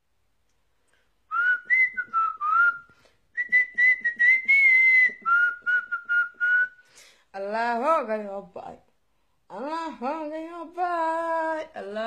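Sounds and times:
breathing: 0.8s - 1.2s, 2.9s - 3.3s, 6.8s - 7.3s, 9.1s - 9.5s
woman whistling a tune: 1.3s - 6.9s.

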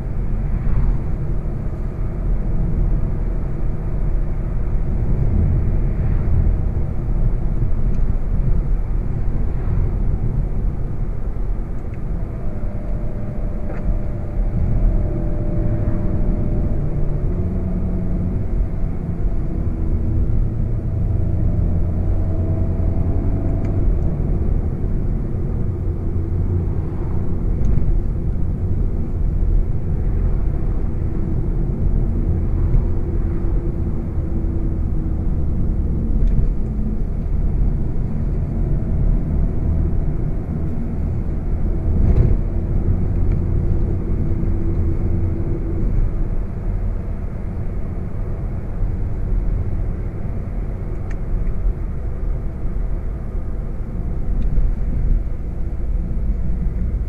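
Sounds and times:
car engine cruising: 0.0s - 57.0s
road and tyre rumble: 0.0s - 57.0s.

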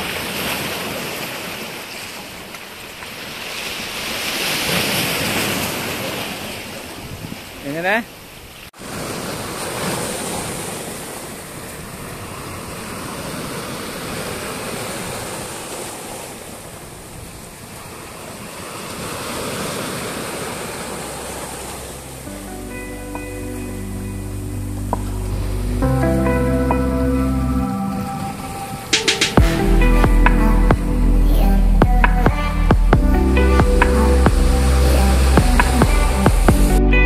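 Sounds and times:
waves breaking on rocky shore: 0.0s - 22.3s
background music with bass: 21.6s - 28.3s, 28.9s - 37.0s.

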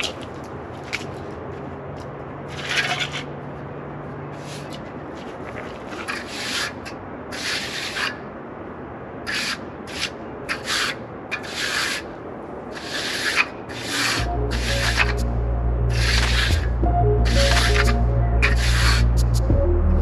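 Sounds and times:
trowel scraping wet concrete: 2.5s - 3.3s, 5.7s - 8.2s, 9.3s - 12.1s, 12.7s - 15.2s, 15.9s - 16.7s, 17.3s - 19.1s
background music: 14.2s - 20.0s.

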